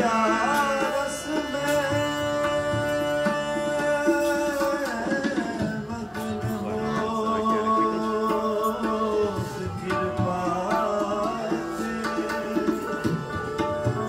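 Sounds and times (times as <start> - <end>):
held harmonium: 0.0 - 14.0
tabla rhythm: 0.0 - 14.0.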